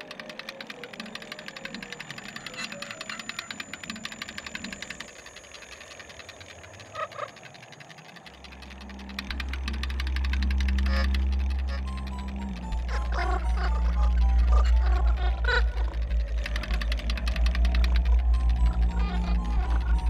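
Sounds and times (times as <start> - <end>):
fast even clicking: 0.0 - 20.0
deep low drone: 8.4 - 20.0.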